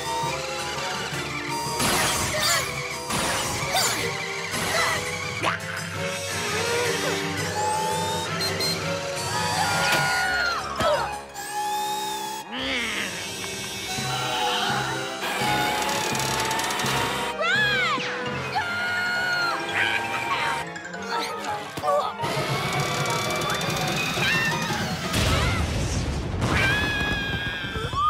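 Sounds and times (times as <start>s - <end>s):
cartoon action music: 0.0s - 27.1s.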